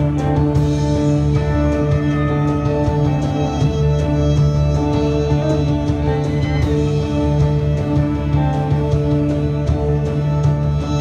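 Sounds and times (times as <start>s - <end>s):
drone rock band playing: 0.0s - 11.0s.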